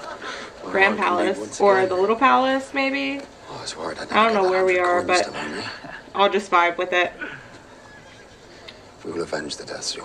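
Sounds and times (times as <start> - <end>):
horse whinnying faintly: 7.4 - 8.7.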